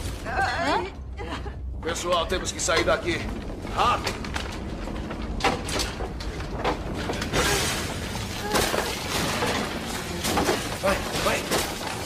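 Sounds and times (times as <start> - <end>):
low earthquake rumble: 0.0 - 11.1
debris crashing and shattering: 2.1 - 12.0.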